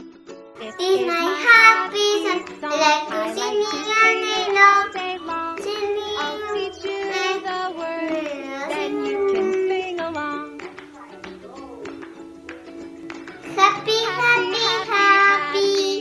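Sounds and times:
backing music track: 0.0s - 16.0s
girl singing: 0.6s - 12.0s, 13.4s - 16.0s.

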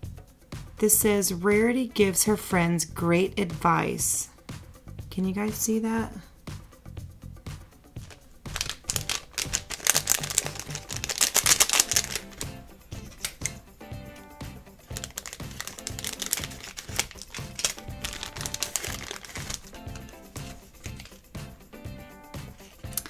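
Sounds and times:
background music with steady beat: 0.0s - 23.0s
plastic bag crinkling: 8.0s - 13.5s, 14.8s - 21.3s.

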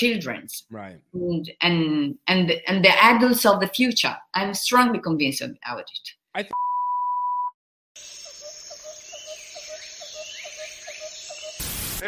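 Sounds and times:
steady electronic beep: 6.5s - 7.6s
hiss: 11.6s - 12.0s.

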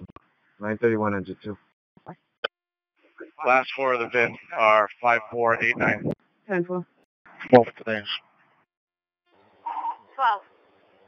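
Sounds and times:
person speaking over radio: 3.2s - 6.2s
radio static bursts: 3.2s - 6.2s.

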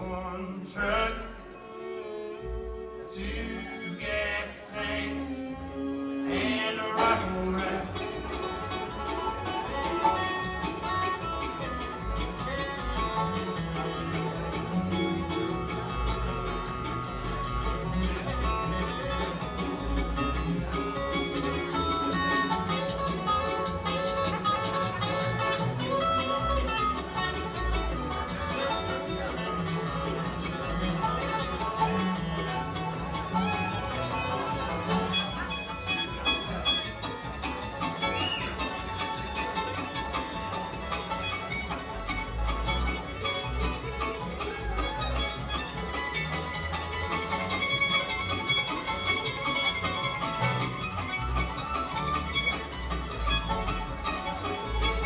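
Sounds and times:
acoustic guitar: 0.0s - 55.0s
banjo: 0.0s - 55.0s
fiddle: 0.0s - 55.0s
mandolin: 0.0s - 55.0s
upright bass: 0.0s - 55.0s.

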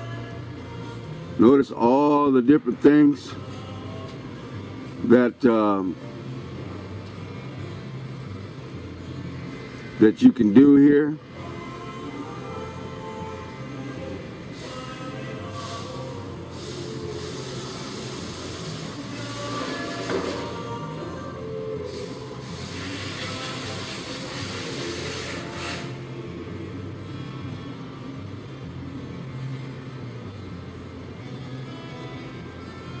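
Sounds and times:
background music with low bass: 0.0s - 33.0s
loud hiss: 14.5s - 20.5s, 21.8s - 26.0s.

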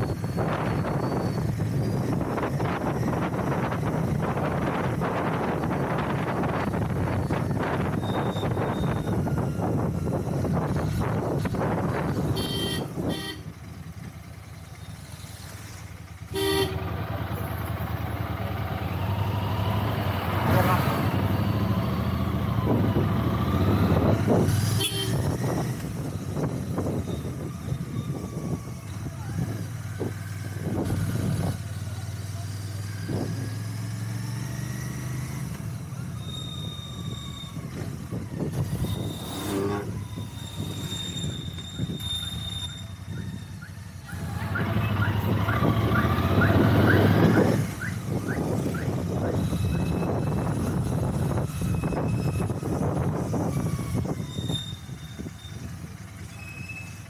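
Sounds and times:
motorcycle engine running: 0.0s - 57.0s
vehicle horns: 12.1s - 13.6s, 16.3s - 17.0s, 24.6s - 25.6s, 38.7s - 43.0s.

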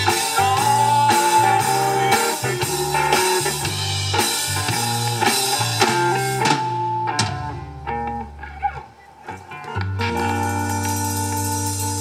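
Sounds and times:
bass guitar sustained notes: 0.0s - 12.0s
electric guitar sustained notes: 0.0s - 12.0s
live rock band: 0.0s - 12.0s.

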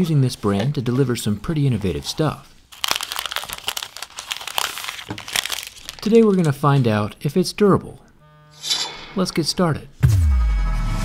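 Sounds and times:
plastic film peeling and crinkling: 1.5s - 7.0s.

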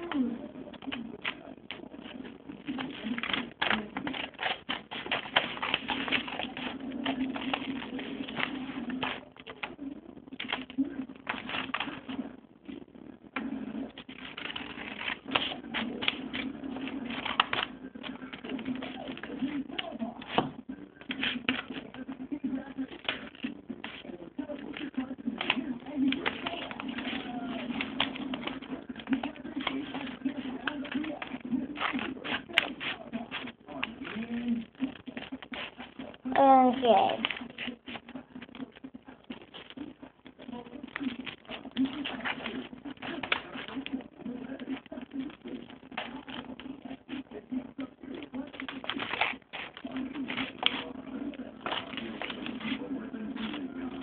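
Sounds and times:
scissors snipping paper: 0.0s - 9.8s, 10.4s - 12.2s, 13.4s - 36.2s, 36.8s - 47.4s, 48.1s - 54.0s.

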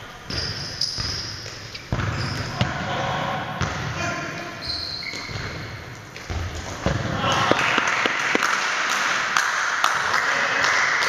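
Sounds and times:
ball striking hard surfaces: 6.2s - 9.2s.

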